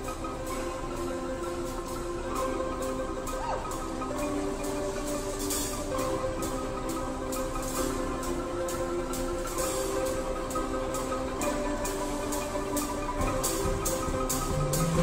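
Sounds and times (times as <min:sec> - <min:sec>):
drum kit beat: 0:00.0 - 0:15.0
marimba band playing: 0:00.0 - 0:15.0.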